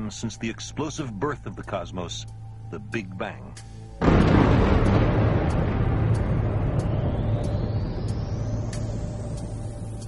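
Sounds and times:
low explosion rumble: 4.0 - 9.8.

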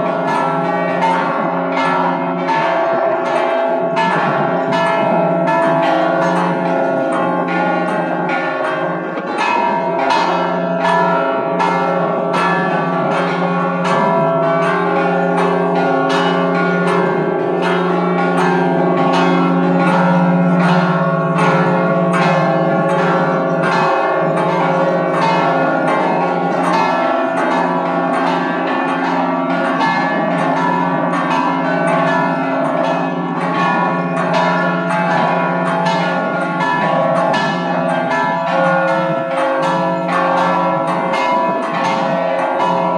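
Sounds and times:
church bells pealing: 0.0 - 42.9.

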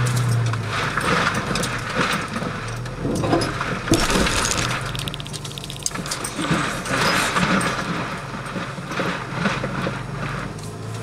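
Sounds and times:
car engine running low: 0.0 - 11.0
rattles and clinks of car body: 0.0 - 11.0.

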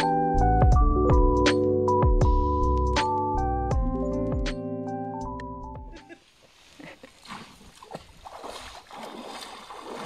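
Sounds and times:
background music: 0.0 - 6.1
feet wading in shallow water: 6.3 - 10.0.

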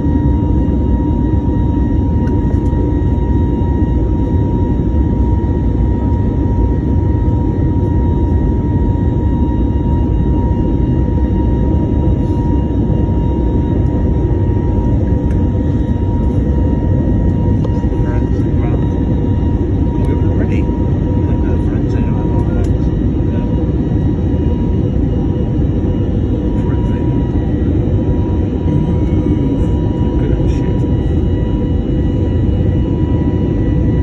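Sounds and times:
airliner cabin engine roar: 0.0 - 34.0
faint steady whine: 0.0 - 34.0.

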